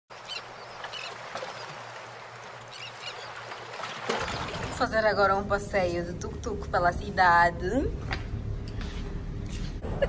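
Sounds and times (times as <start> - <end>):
water and wind rushing: 0.1 - 6.4.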